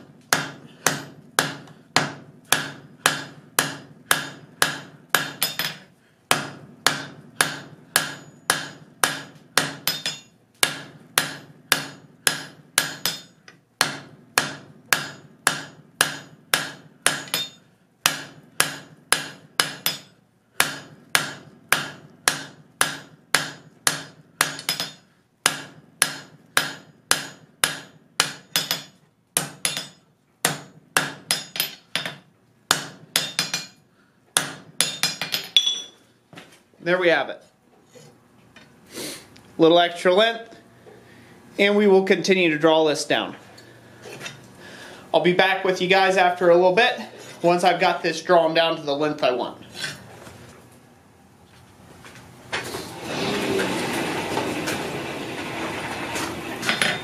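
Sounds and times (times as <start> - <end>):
hammer striking hot metal: 0.3 - 33.8, 34.4 - 36.0
anvil ringing: 9.6 - 13.4, 17.1 - 17.6, 34.8 - 36.0.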